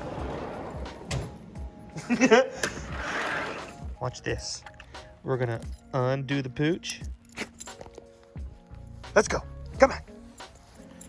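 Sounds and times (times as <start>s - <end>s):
soft background music: 0.0s - 11.0s
leash clip clicks: 4.6s - 5.8s, 6.8s - 8.1s.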